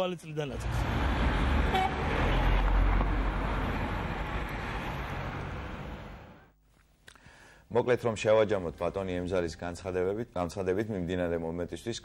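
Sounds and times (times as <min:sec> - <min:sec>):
street traffic: 0:00.4 - 0:06.6
pickup truck driving past: 0:00.6 - 0:06.4.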